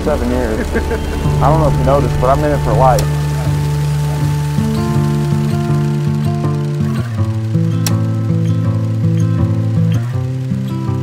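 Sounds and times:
slow instrumental music: 0.0s - 11.0s.

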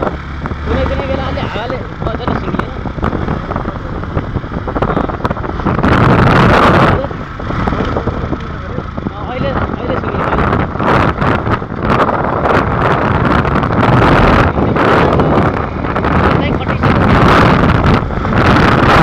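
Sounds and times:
motorcycle engine: 0.0s - 19.0s
road noise: 0.0s - 19.0s
wind buffeting microphone: 0.0s - 19.0s.

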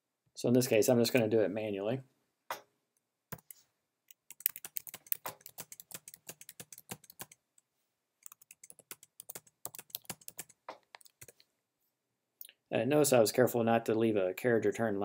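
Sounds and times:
typing on computer keyboard: 4.1s - 7.4s, 8.2s - 11.4s.

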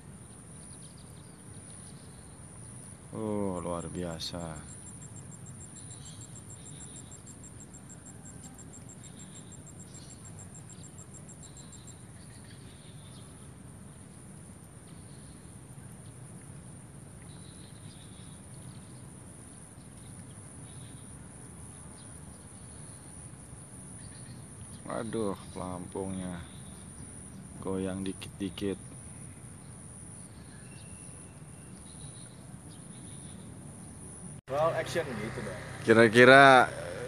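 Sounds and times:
rapid pulsed insect chirping: 0.0s - 37.0s
insect high trill: 2.1s - 12.5s, 34.5s - 37.0s.

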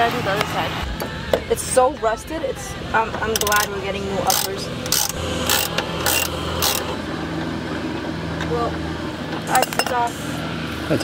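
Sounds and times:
steady low hum: 0.0s - 11.0s
ratchet wrench clicking: 3.4s - 6.9s.

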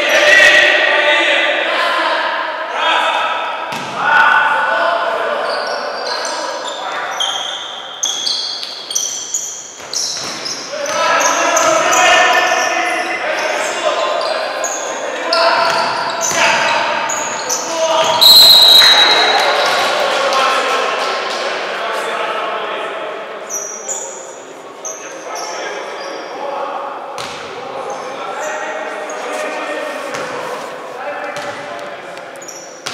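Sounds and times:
players calling out: 3.8s - 20.7s
sneakers squeaking on court: 5.4s - 11.9s, 13.4s - 19.8s, 32.4s - 32.9s
whistle blast: 18.2s - 19.6s.

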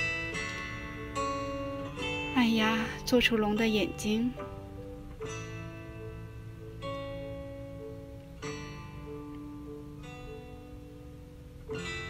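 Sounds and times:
gentle plucked-string melody: 0.0s - 12.0s.

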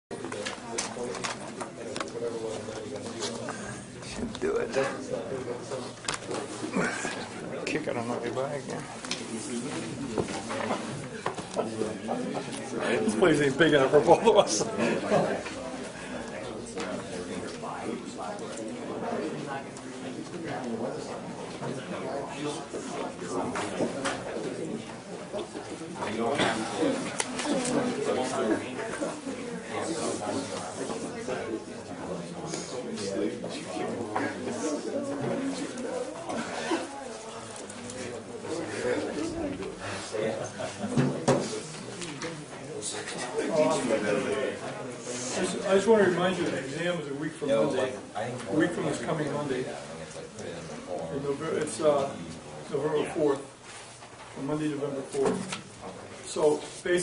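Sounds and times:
murmuring voices: 0.1s - 54.4s.

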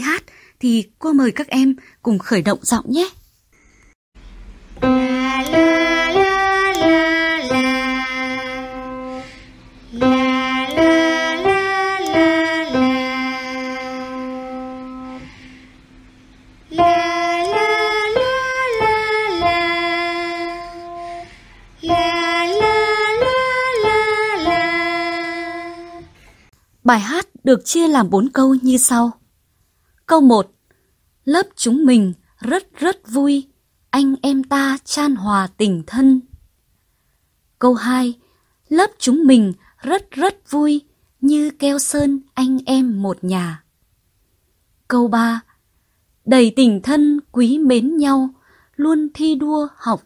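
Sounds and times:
instrumental accompaniment: 4.7s - 15.6s.

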